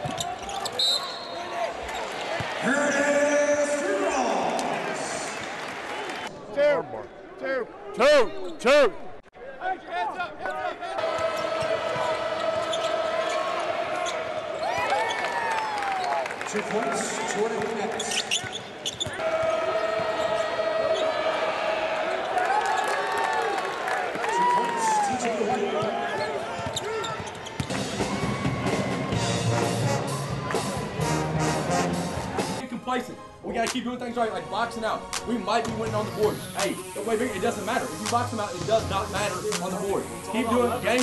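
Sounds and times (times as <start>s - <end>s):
sneakers squeaking on court: 0.0s - 2.5s, 18.0s - 19.2s, 25.8s - 27.8s
crowd noise: 0.0s - 41.0s
crowd din: 25.7s - 32.7s
loud music with steady beat: 27.8s - 32.6s.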